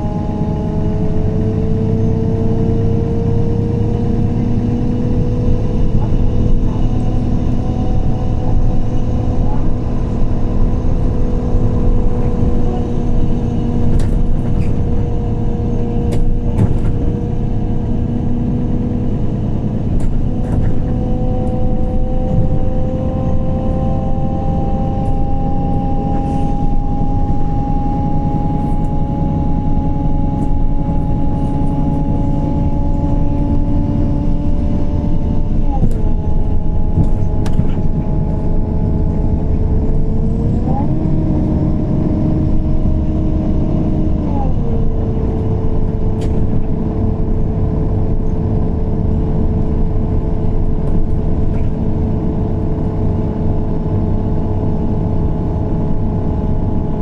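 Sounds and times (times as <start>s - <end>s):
bus engine running: 0.0s - 57.0s
drivetrain whine: 0.0s - 57.0s.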